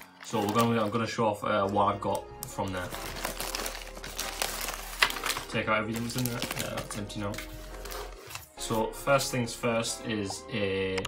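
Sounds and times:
plastic mailer crinkling: 0.0s - 1.2s, 2.4s - 8.6s.

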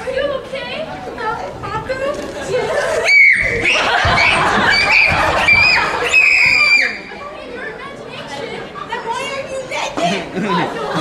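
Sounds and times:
chatter of voices in a hall: 0.0s - 11.0s.

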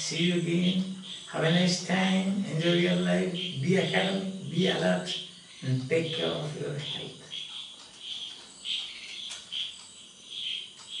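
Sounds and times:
high-pitched chirping: 0.0s - 11.0s.

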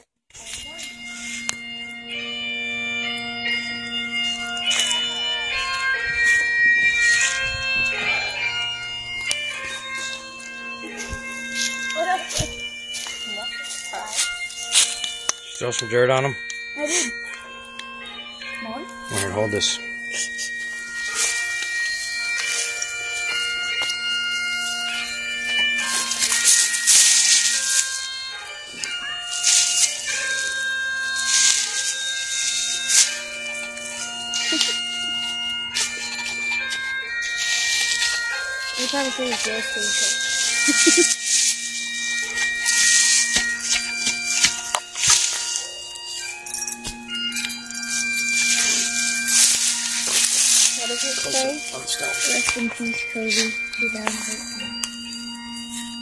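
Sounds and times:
bagpipe melody with drone: 0.0s - 56.0s.

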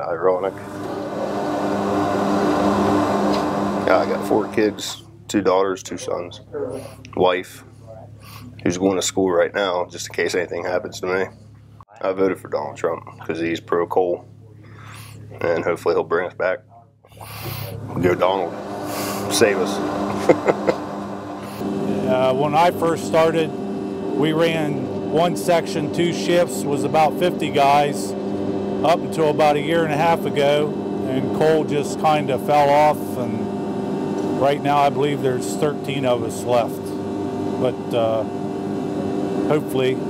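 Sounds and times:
machine mechanical hum: 0.0s - 40.0s
person laughing: 20.1s - 21.6s.

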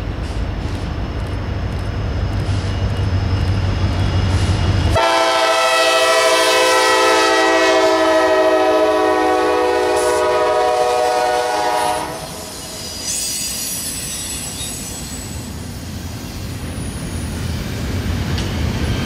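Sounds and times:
steel wheels squealing on rails: 0.0s - 5.2s, 9.8s - 19.0s
diesel locomotives rumbling: 0.0s - 19.0s
train horn chord: 4.9s - 12.4s.

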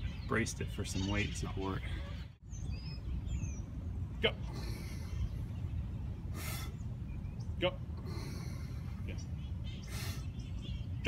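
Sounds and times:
high bird chirps: 0.0s - 7.6s
steady low rumble: 0.0s - 11.0s.

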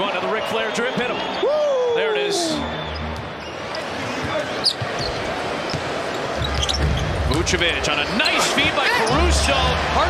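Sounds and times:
large crowd noise: 0.0s - 10.0s
sneaker squeaks: 2.7s - 7.4s.

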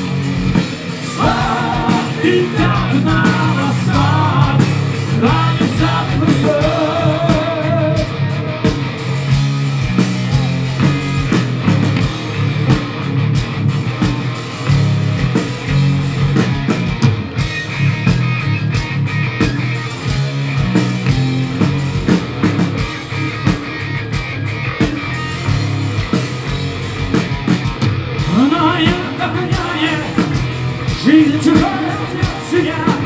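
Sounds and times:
bass guitar: 0.0s - 33.0s
drum kit: 0.0s - 33.0s
electric guitars: 0.0s - 33.0s.

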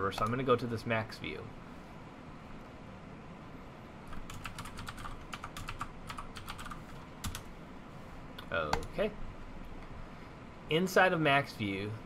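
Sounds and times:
typing on computer keyboard: 4.1s - 7.5s.

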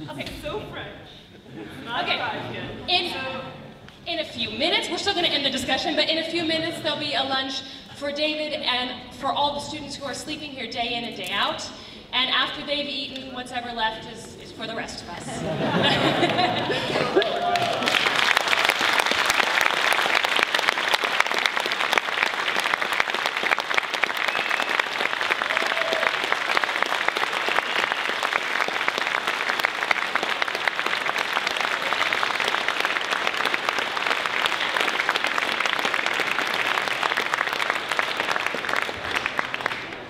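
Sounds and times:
audience applauding: 15.8s - 40.0s.

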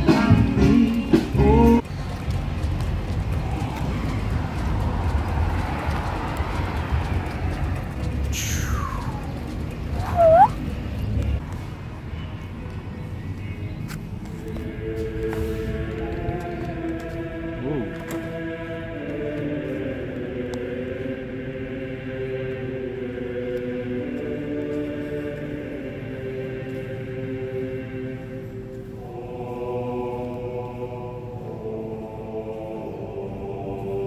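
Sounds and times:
held musical tones: 6.8s - 11.4s
high whistle gliding down: 10.0s - 10.6s.

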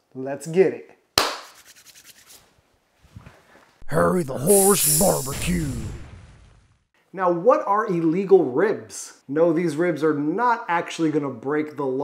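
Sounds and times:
hand clap with echoes: 1.2s - 1.6s.

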